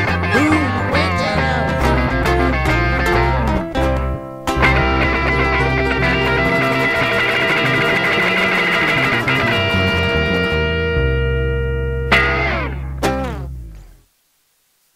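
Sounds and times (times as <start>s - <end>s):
rock band playing: 0.0s - 13.5s
final guitar chords ringing: 0.0s - 14.0s.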